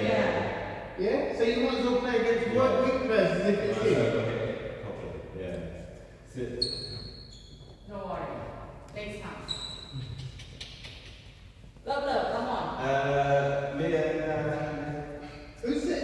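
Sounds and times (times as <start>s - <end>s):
trainers squeaking on wooden floor: 6.6s - 7.9s.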